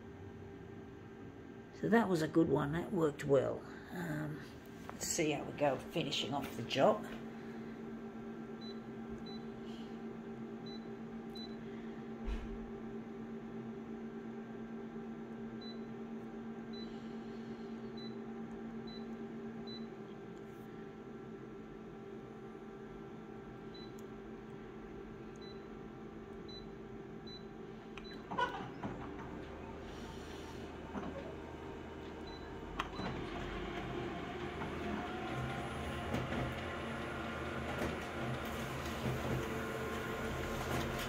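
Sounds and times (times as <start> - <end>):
copier humming: 0.0 - 41.0.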